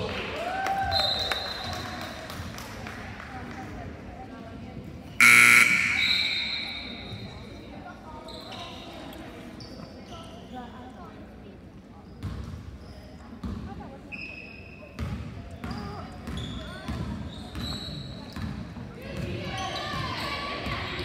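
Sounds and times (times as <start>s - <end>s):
scoreboard horn blast: 5.2s - 6.9s
sneakers squeaking: 5.2s - 10.7s, 14.1s - 18.7s.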